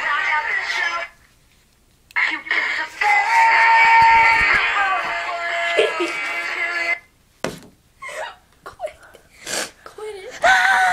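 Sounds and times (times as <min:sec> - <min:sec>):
pop song with sung vocal: 0:00.0 - 0:01.2, 0:02.2 - 0:07.1.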